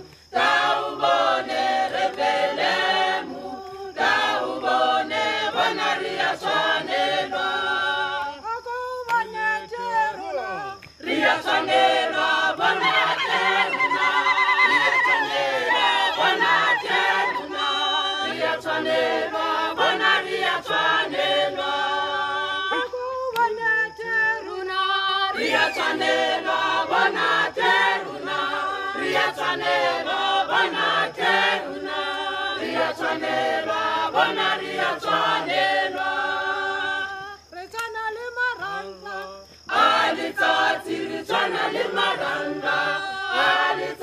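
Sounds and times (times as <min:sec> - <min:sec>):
choir singing in harmony: 0:00.0 - 0:44.0.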